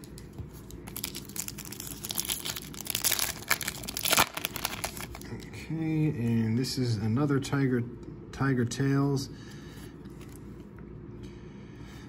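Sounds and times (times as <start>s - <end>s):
foil wrapper tearing and crinkling: 0.0s - 5.3s.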